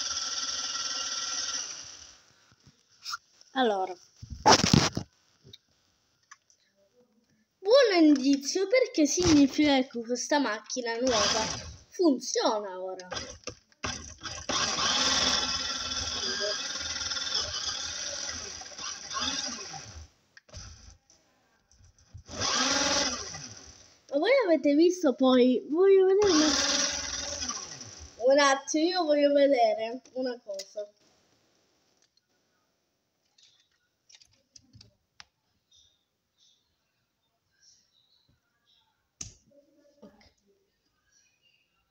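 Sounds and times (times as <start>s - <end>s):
small electric motor whirring: 0.0s - 2.2s, 11.0s - 11.8s, 13.1s - 21.0s, 22.2s - 23.9s, 26.2s - 28.2s.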